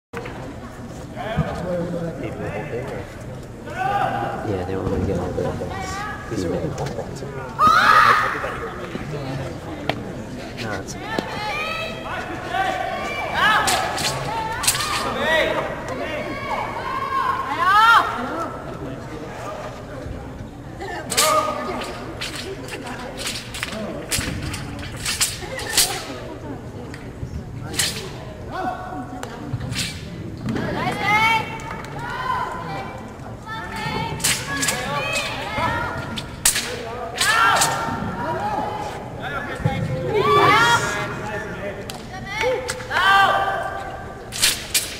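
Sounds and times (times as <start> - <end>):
voices chattering: 0.2 - 44.9
sharp snap: 44.3 - 44.9.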